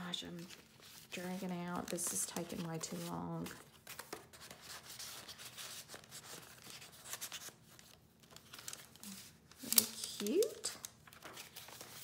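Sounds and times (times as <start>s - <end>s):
paper rustling: 0.0s - 12.0s.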